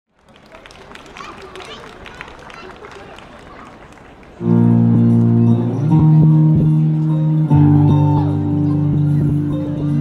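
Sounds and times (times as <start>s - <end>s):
faint audience chatter: 0.2s - 10.0s.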